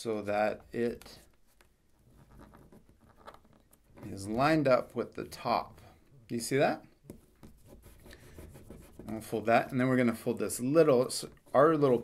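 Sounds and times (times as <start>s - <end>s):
paper rustling and rubbing: 7.4s - 9.8s.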